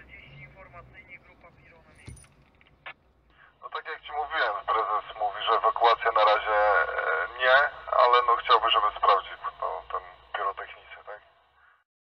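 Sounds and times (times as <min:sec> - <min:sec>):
man speaking: 0:00.0 - 0:02.2, 0:03.6 - 0:11.3.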